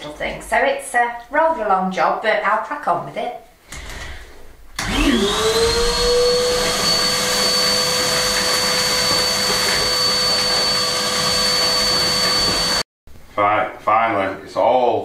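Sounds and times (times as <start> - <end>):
vacuum cleaner motor whine: 4.8 - 12.8.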